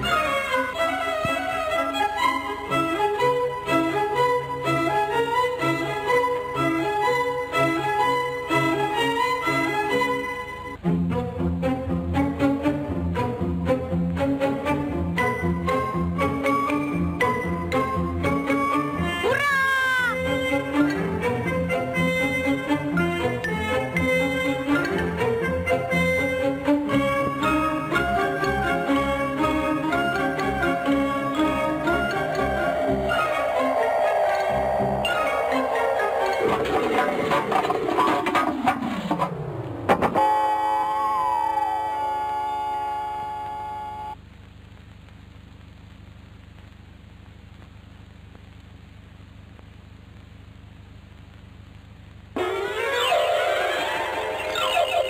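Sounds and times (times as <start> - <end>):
light orchestral music: 0.0 - 19.4, 20.1 - 38.3
cartoon child gleeful cry: 19.2 - 20.2
long falling tone: 29.9 - 37.9
wavering ringing chord: 31.9 - 37.2
cartoon crash: 32.2 - 41.9, 52.4 - 55.0.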